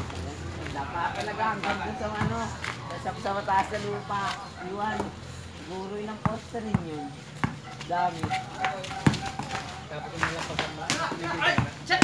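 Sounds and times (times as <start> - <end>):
basketball bouncing on concrete: 0.0 - 2.8, 3.7 - 5.2, 6.0 - 12.0.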